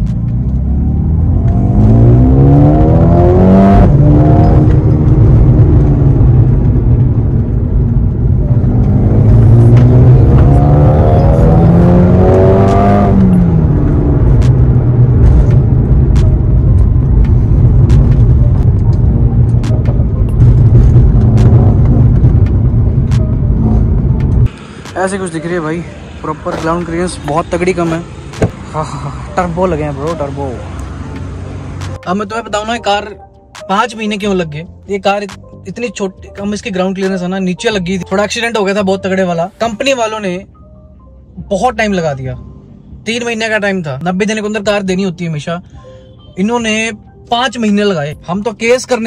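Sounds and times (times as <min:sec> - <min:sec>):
car engine accelerating: 0:00.0 - 0:32.5
road rumble: 0:00.0 - 0:49.0.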